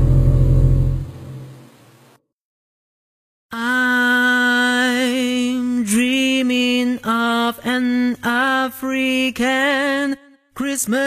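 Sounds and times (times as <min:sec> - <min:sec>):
loud low drone: 0:00.0 - 0:01.8.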